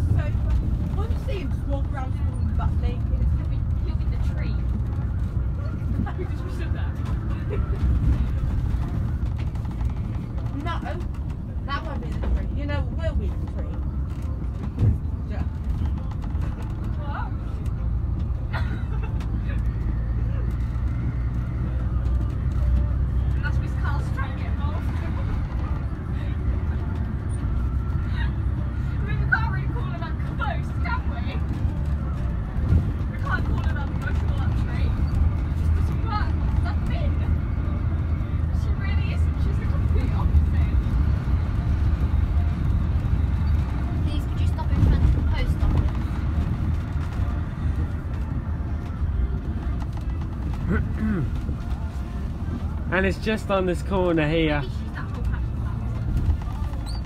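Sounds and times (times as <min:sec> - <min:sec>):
bus engine drone: 0:00.0 - 0:57.0
faint passenger chatter: 0:00.0 - 0:57.0
road noise: 0:00.0 - 0:57.0.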